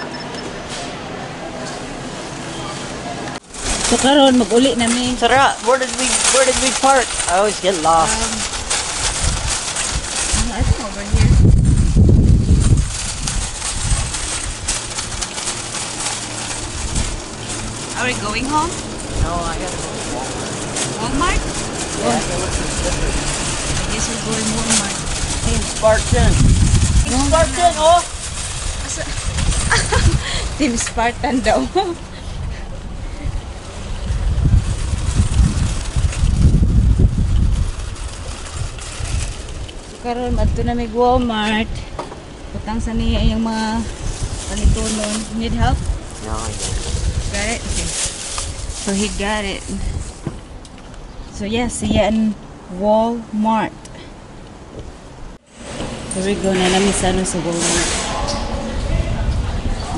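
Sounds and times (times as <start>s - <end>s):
wind buffeting microphone: 3.3s - 59.9s
shopping cart rattling on asphalt: 3.4s - 50.2s, 55.5s - 58.7s.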